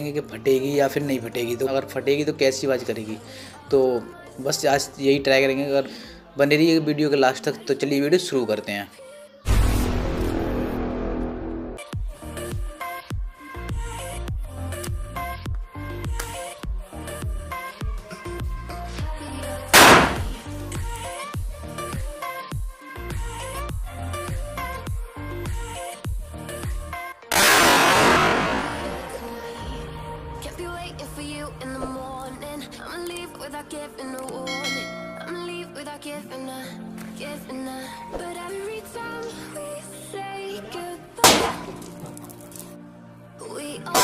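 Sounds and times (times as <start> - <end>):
background music with singing: 0.0 - 44.0
firecracker bang under water: 19.8 - 20.4, 27.4 - 29.2, 41.2 - 41.8.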